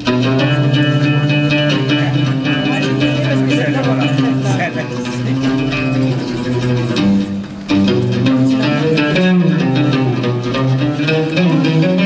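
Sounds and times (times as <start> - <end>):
live band plucked strings: 0.0 - 12.0
low bass notes: 0.0 - 12.0.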